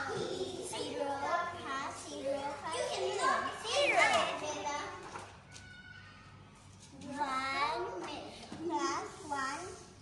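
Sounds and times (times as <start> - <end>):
young children talking: 0.0 - 6.4.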